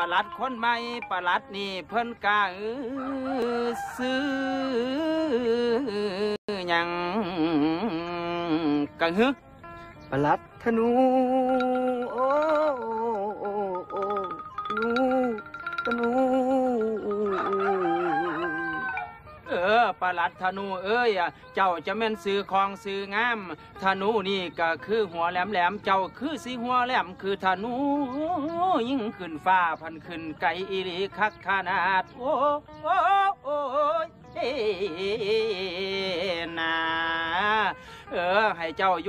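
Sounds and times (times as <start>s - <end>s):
man chanting: 0.0s - 9.4s, 10.0s - 39.0s.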